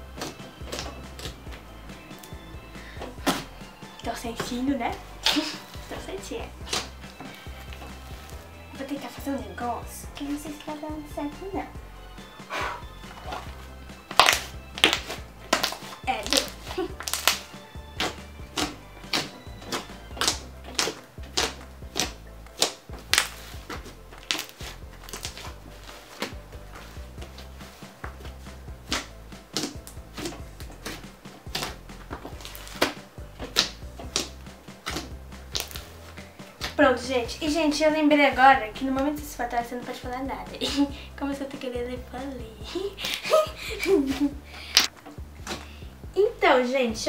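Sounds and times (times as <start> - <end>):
background music with bass line: 0.0 - 47.0
slime sticky pops and crackles: 14.1 - 23.4, 28.9 - 31.8, 32.4 - 35.9.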